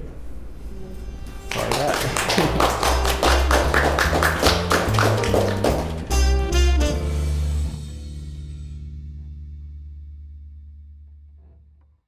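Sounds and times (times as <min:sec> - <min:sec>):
upbeat music with bass: 0:01.4 - 0:10.9.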